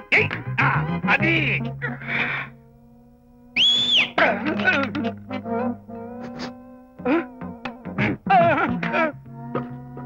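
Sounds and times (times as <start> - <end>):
faint background music drone: 0.0 - 10.0
breathy noise: 1.8 - 2.6
short high whistle: 3.6 - 4.2.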